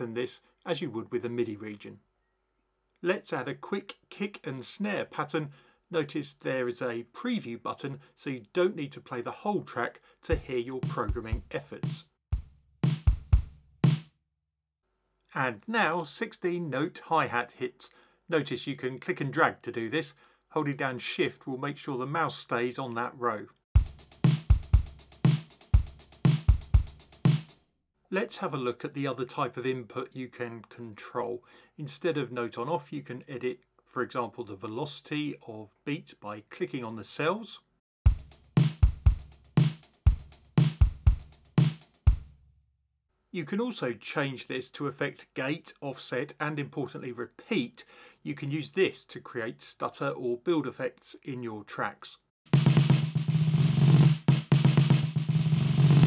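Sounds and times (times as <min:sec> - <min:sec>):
snare drum hit: 0:10.8 - 0:12.0, 0:12.8 - 0:14.1, 0:23.8 - 0:27.5, 0:38.1 - 0:42.3, 0:52.6 - 0:56.0
kick drum hits: 0:12.3 - 0:14.1, 0:38.1 - 0:42.3.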